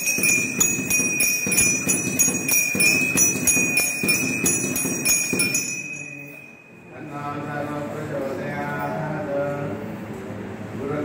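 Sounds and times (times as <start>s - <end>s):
low rhythmic clatter: 0.0s - 6.6s
temple bell ringing: 0.0s - 7.4s.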